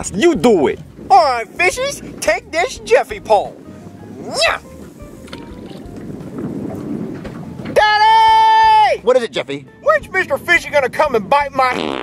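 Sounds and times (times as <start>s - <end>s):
water noise: 0.0s - 11.7s
wind: 0.0s - 12.0s.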